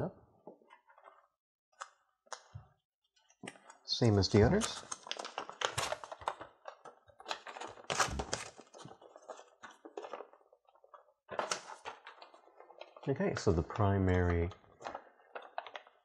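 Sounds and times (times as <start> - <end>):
paper crackling and rustling: 3.5 - 16.0.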